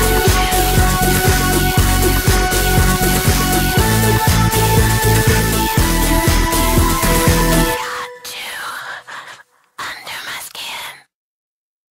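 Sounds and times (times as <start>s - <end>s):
whispered breathy vocal: 7.8s - 11.1s.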